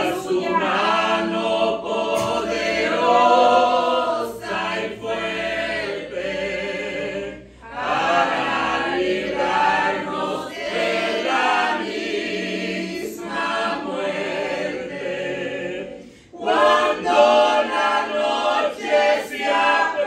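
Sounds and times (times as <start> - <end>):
group singing a hymn unaccompanied: 0.0 - 20.0.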